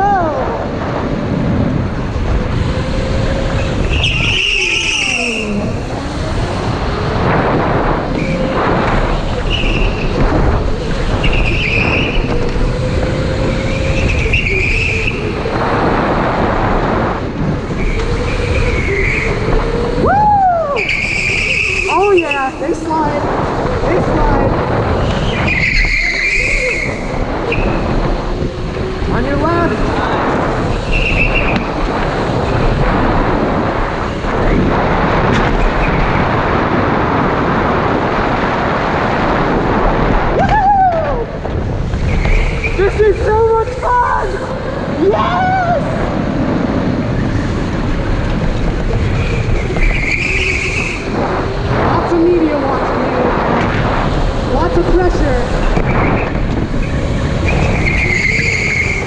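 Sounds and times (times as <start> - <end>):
steady rushing noise: 0.0 - 59.0
electric go-kart motor whine: 1.8 - 38.0
tire squeals: 2.4 - 16.9, 17.5 - 39.2, 40.2 - 59.0.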